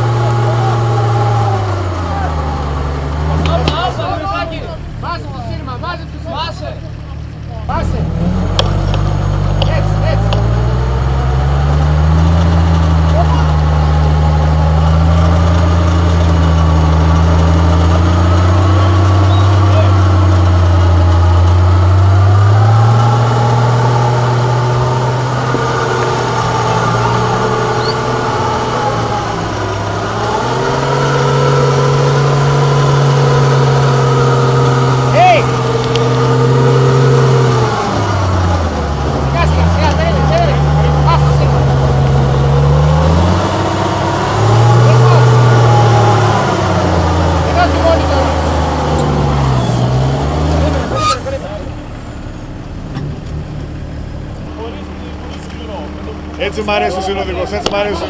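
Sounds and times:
diesel engine working hard: 0:00.0 - 0:58.0.

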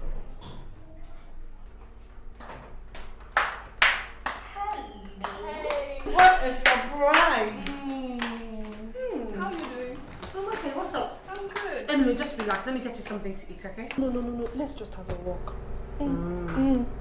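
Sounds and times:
hand clapping: 0:02.9 - 0:08.9, 0:11.3 - 0:13.2.

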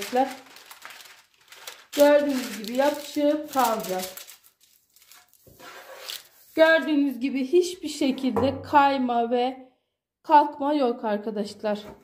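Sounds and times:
hands rustling baking paper: 0:00.0 - 0:07.2.

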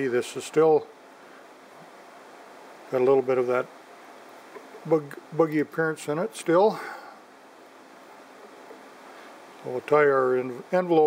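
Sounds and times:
man speaking: 0:00.0 - 0:00.9, 0:02.9 - 0:03.7, 0:04.8 - 0:07.2, 0:09.6 - 0:11.0
faint room tone hiss: 0:00.0 - 0:11.0.

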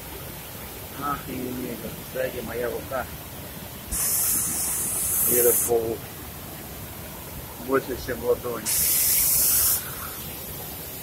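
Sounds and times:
loud high-pitched hiss: 0:03.9 - 0:06.0, 0:08.6 - 0:10.4.

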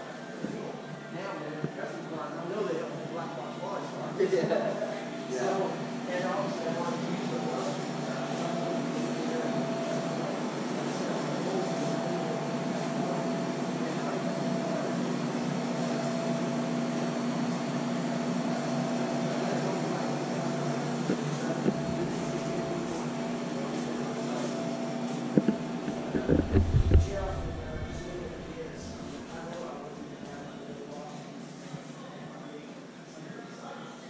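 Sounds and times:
machinery hum: 0:04.8 - 0:31.2
short knocks and thumps: 0:25.4 - 0:28.1
low two-tone drone: 0:26.1 - 0:29.4.

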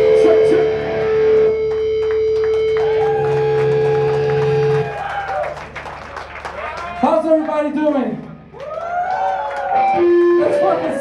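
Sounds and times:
distorted guitars ringing chord: 0:00.0 - 0:04.9.

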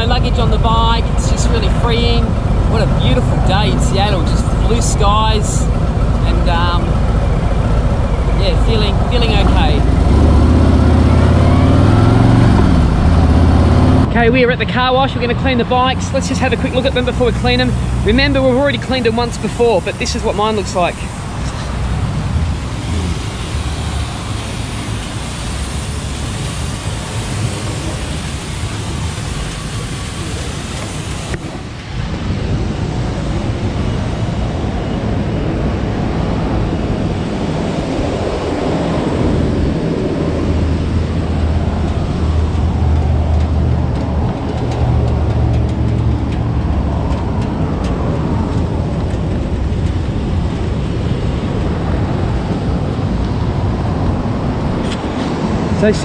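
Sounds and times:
low engine rumble: 0:00.0 - 0:56.0
road traffic: 0:00.0 - 0:56.0.

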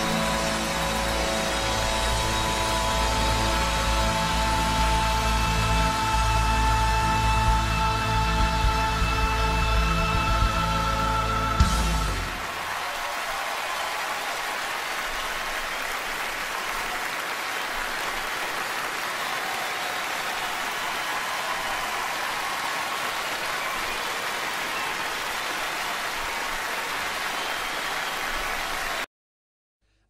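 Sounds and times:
audience applauding: 0:00.0 - 0:29.1.

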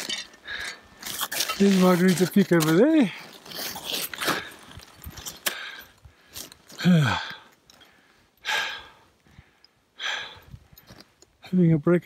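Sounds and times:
person breathing hard: 0:05.4 - 0:11.1.

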